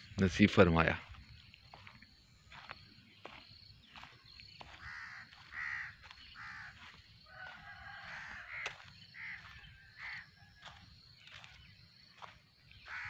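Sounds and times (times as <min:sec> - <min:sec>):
harsh bird calls: 0:00.0 - 0:13.0.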